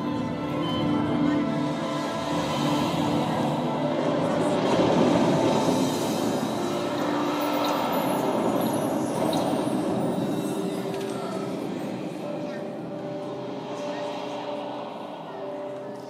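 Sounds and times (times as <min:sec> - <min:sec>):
soundtrack over speakers: 0:00.0 - 0:16.0.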